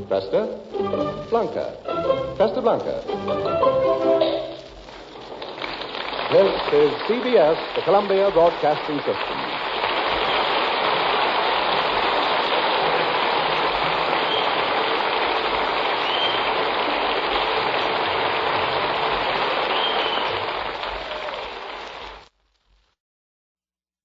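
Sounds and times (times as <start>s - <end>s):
old recording hiss and crackle: 0.0s - 23.0s.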